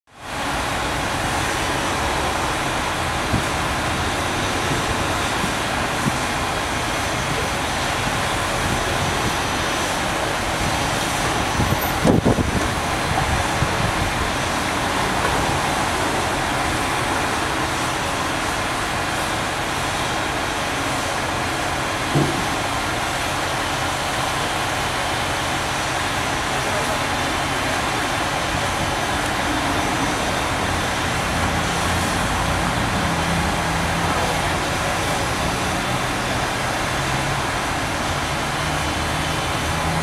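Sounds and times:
distant traffic rumble and hiss: 0.1 - 40.0.

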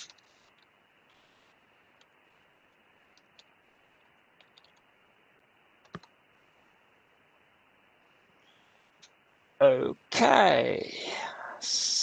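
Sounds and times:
mouse click: 5.8 - 6.2.

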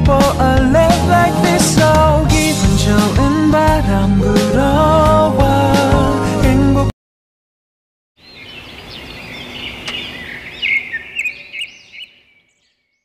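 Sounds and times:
birds chirping: 8.2 - 13.0.

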